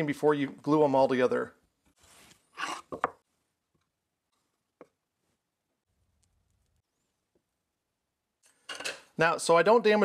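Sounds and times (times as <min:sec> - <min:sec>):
man speaking: 0:00.0 - 0:01.6, 0:09.2 - 0:10.0.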